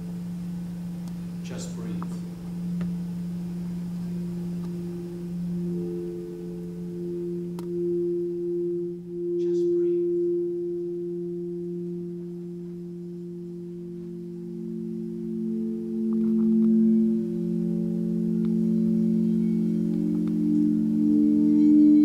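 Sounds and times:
crystal singing bowls ringing: 0.0s - 22.0s.

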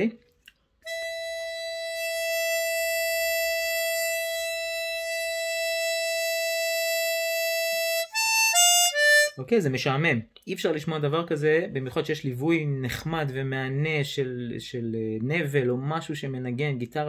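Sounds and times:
harmonica long note: 0.8s - 9.4s
harmonica short descending notes: 0.8s - 9.4s.

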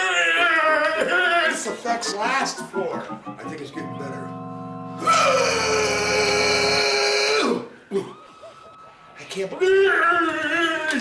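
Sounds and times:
low synthesizer chord: 2.7s - 7.0s
man singing drawn-out note: 5.0s - 7.6s.

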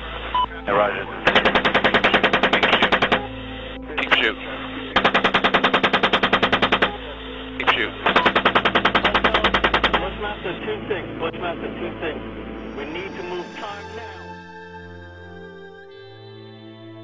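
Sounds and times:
chain gun firing bursts: 1.3s - 3.3s, 5.0s - 7.0s, 8.1s - 10.1s.

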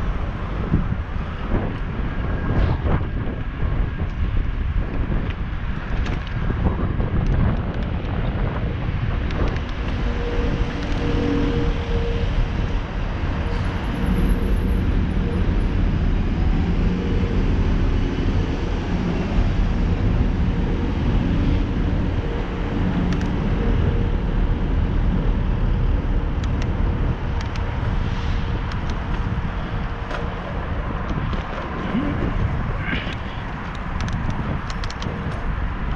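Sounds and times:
city traffic and engine hum: 0.0s - 35.9s
wind rushing over microphone: 0.0s - 35.9s.

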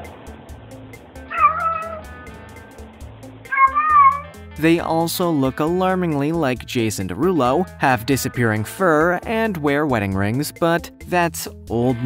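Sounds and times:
cat meowing: 1.3s - 2.4s, 3.5s - 4.4s.

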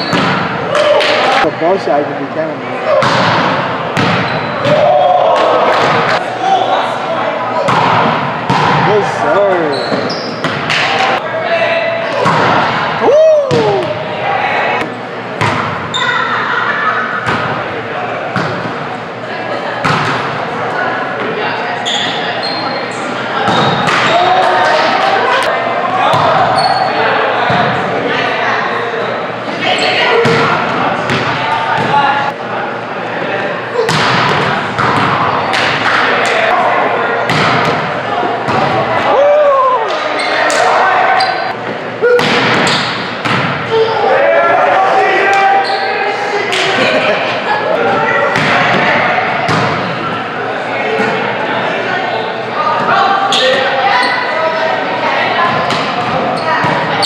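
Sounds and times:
players shouting: 4.4s - 9.8s, 10.7s - 14.9s, 43.6s - 49.5s.

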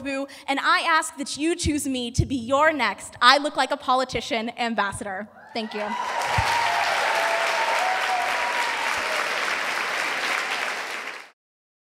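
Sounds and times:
audience applauding: 5.6s - 11.4s.

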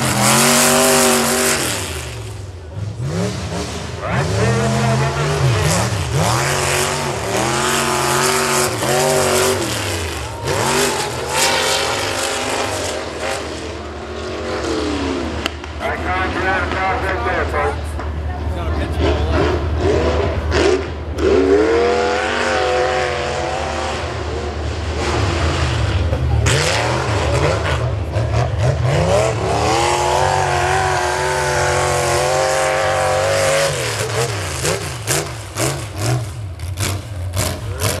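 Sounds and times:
truck engine revving: 0.0s - 38.0s.

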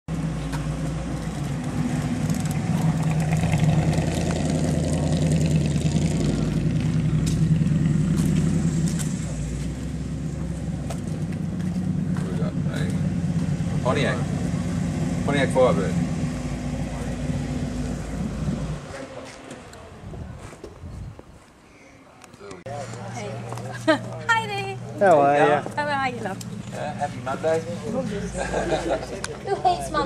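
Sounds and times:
car engine rumbling: 0.1s - 21.4s, 22.6s - 30.0s.

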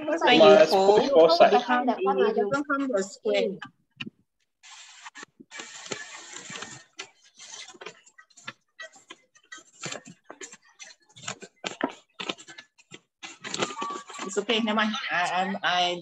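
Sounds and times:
paper rustling and crinkling: 4.6s - 14.4s.

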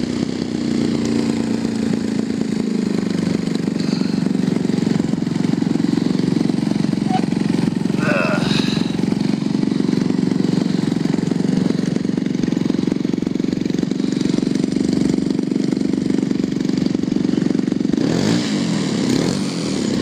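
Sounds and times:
two-stroke engine running steadily: 0.0s - 20.0s.

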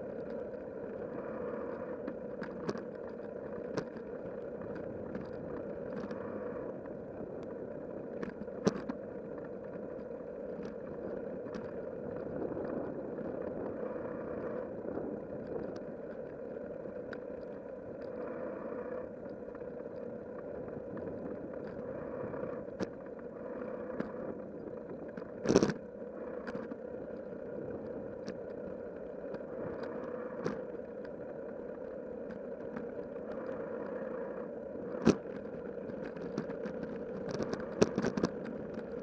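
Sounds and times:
bicycle tyres rolling on pavement: 0.0s - 39.0s.

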